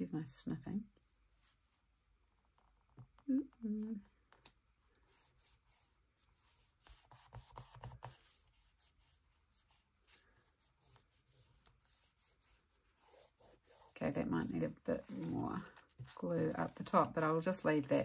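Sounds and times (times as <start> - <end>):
paper rustling and rubbing: 4.9 - 18.0.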